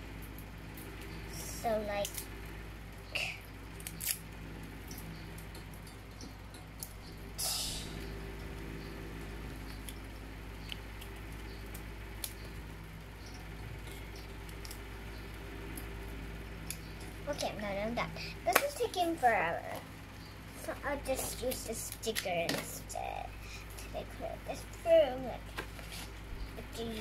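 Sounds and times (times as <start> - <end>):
low hum: 0.0 - 27.0.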